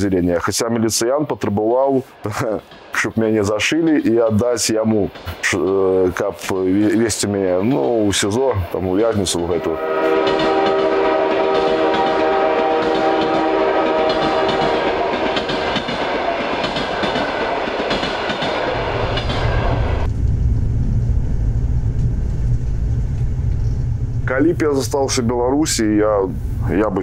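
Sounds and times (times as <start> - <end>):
approaching train running noise: 0.0 - 27.0
low rumble inside train carriage: 0.3 - 27.0
train horn: 9.5 - 16.5.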